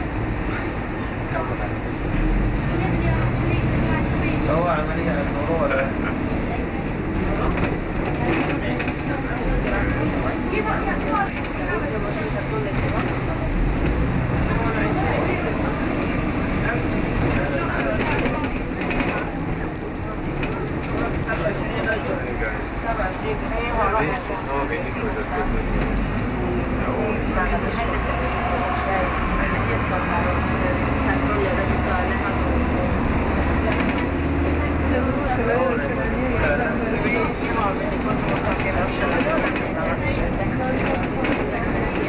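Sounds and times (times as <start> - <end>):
bus diesel engine rumble: 0.0 - 42.0
indistinct passenger chatter: 0.0 - 42.0.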